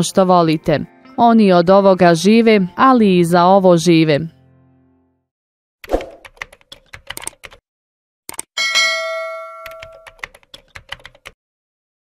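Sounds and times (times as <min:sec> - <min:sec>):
keyboard typing clicks: 0:05.9 - 0:07.6, 0:08.3 - 0:08.5, 0:09.6 - 0:11.4
bright bell ding: 0:08.6 - 0:10.2.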